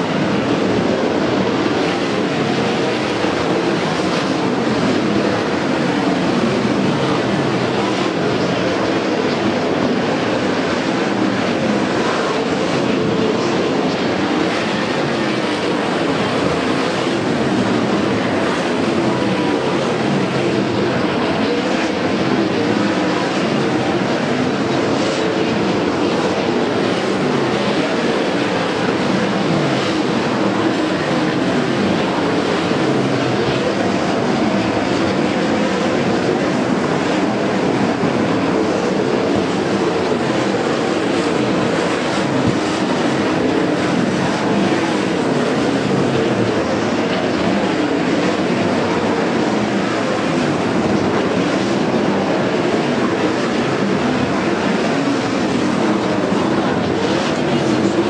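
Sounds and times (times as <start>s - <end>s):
sprint car engines droning: 0.0s - 58.0s.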